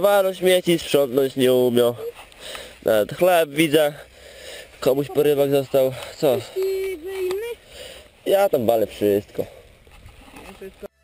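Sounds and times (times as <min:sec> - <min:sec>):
man speaking: 0:00.0 - 0:02.2, 0:02.8 - 0:04.1, 0:04.8 - 0:07.6, 0:08.2 - 0:09.6.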